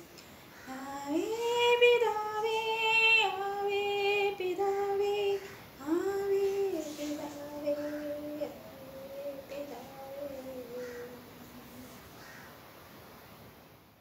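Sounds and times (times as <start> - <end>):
woman singing unaccompanied: 0.0 - 12.4.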